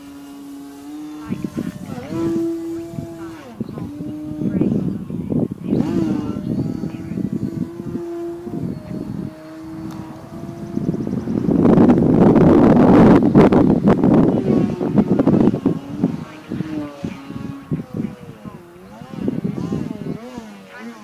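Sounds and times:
model airplane motor droning: 0.0s - 21.0s
wind noise on microphone: 0.0s - 21.0s.

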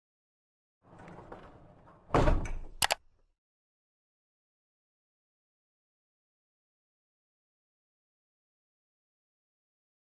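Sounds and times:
quick sharp clicks: 2.8s - 3.0s.

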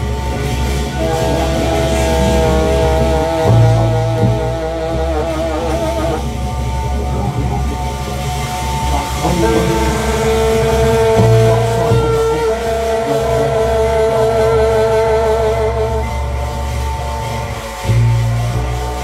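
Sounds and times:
drums with cymbals: 0.0s - 19.0s
long wavering held note: 0.0s - 19.0s
upright bass: 0.0s - 19.0s.

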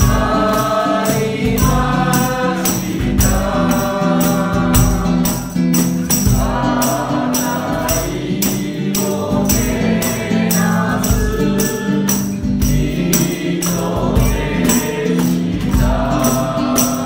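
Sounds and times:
acoustic guitar: 0.0s - 17.0s
group of voices singing: 0.0s - 17.0s
tambourine beats: 0.0s - 17.0s.

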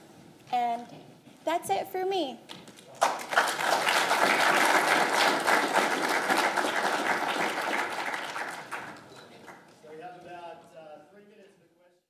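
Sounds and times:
audience applauding: 2.9s - 9.8s.

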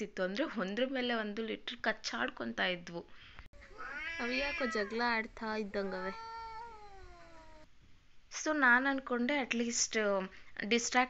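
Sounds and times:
cat yowling: 3.6s - 5.1s, 5.8s - 7.7s.

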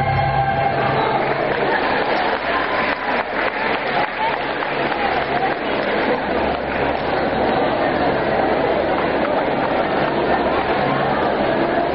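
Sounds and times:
audience applauding: 0.0s - 10.9s.

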